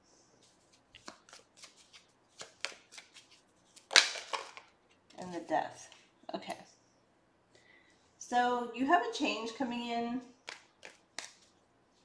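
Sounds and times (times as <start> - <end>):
cards being shuffled: 0.4 - 5.4, 10.4 - 11.6.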